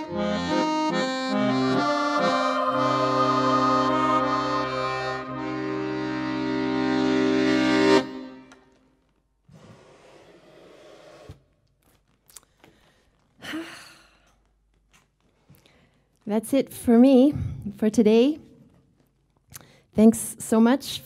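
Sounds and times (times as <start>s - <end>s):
accordion sustained chord: 0.0s - 8.8s.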